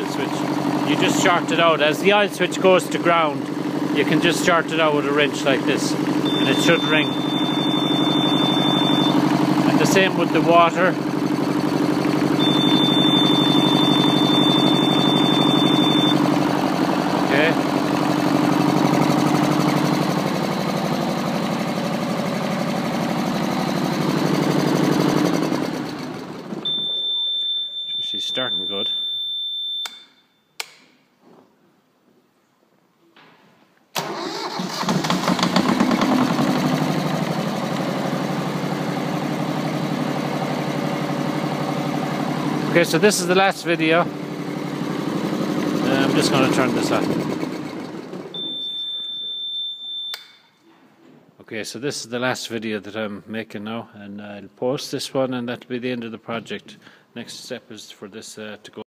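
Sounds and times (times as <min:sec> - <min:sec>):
marine diesel engine running: 0:00.0 - 0:26.8, 0:34.0 - 0:48.7
high-pitched alarm ringing: 0:06.3 - 0:09.3, 0:12.4 - 0:16.2, 0:26.7 - 0:30.5, 0:48.4 - 0:50.5.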